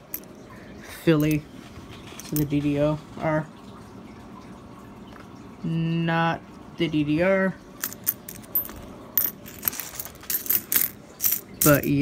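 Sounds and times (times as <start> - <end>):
coins clinking: 7.8 - 12.0.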